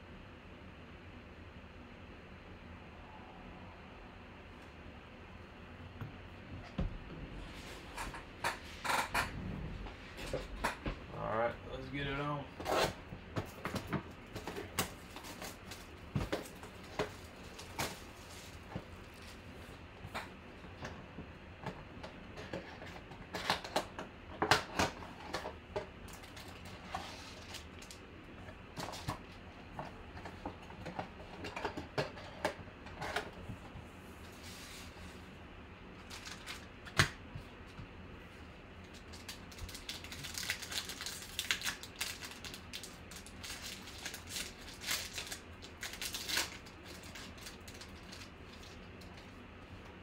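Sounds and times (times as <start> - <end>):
rustling of wrapped packs: 11.7 - 19.8, 36.0 - 36.8, 38.9 - 49.4.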